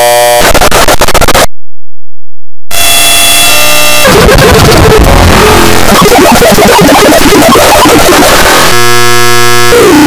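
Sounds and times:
distorted buzzing tone: 0.0 - 1.5, 2.7 - 10.0
loud crackling noise: 0.0 - 1.5, 2.7 - 10.0.

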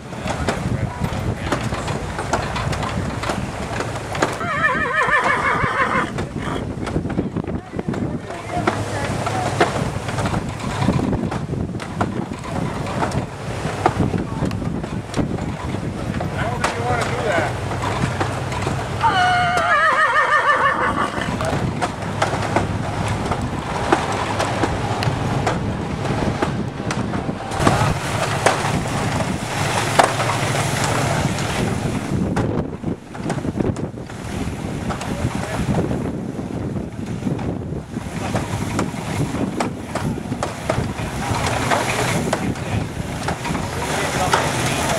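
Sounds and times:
wind on microphone: 0.0 - 44.9
people talking: 0.1 - 3.6, 6.2 - 11.2, 15.9 - 17.6, 19.0 - 33.8, 34.9 - 36.1, 39.9 - 44.9
mechanical rumble with low hum: 21.3 - 34.1.

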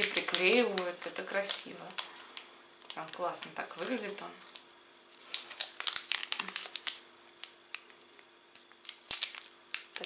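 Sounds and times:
foil sachet crinkling: 0.0 - 10.0.

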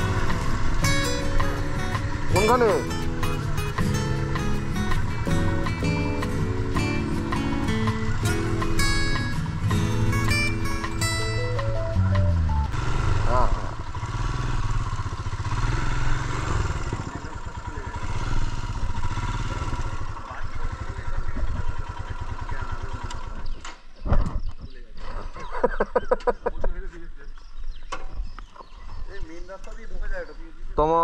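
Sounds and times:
motorcycle engine running: 0.0 - 23.9
people's voices: 2.0 - 3.8, 13.3 - 13.8, 16.8 - 18.4, 20.2 - 23.4.

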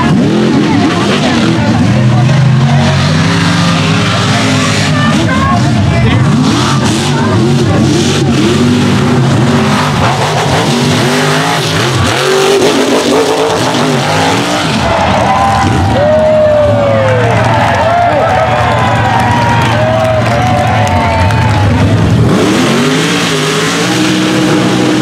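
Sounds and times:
truck engines revving: 0.0 - 25.0.

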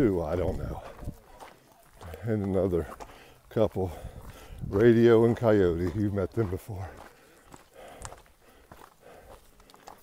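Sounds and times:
footsteps on gravel: 0.0 - 10.0.

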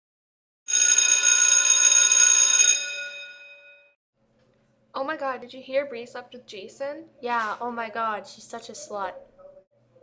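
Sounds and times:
electric school bell ringing: 0.7 - 4.0.

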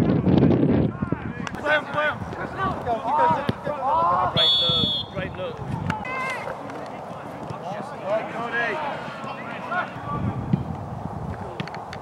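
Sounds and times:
voices calling and shouting: 0.8 - 11.9
referee's whistle blast: 4.4 - 5.2.

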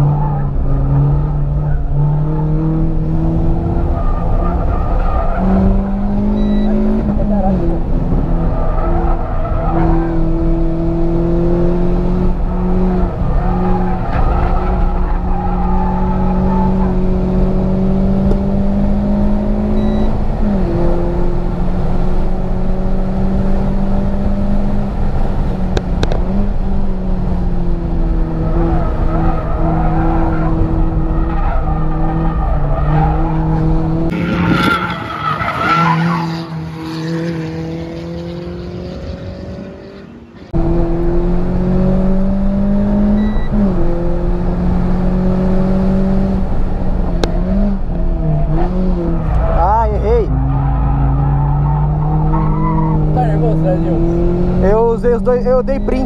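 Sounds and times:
car engine at high revs: 0.0 - 56.0
car passing trackside: 0.0 - 56.0.

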